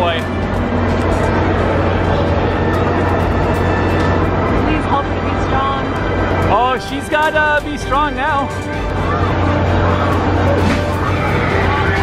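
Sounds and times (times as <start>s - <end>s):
loud machine hum from rides: 0.0s - 12.0s
music: 0.0s - 12.0s
voices: 1.2s - 12.0s.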